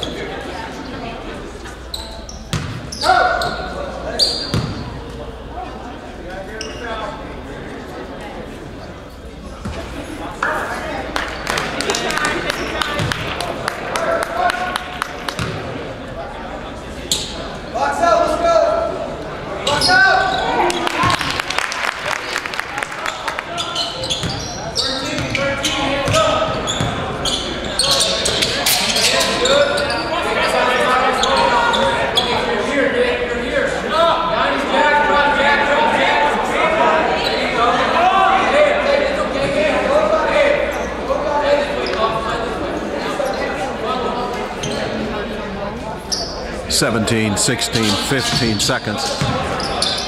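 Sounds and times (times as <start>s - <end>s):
voices in a large gym: 0.0s - 50.0s.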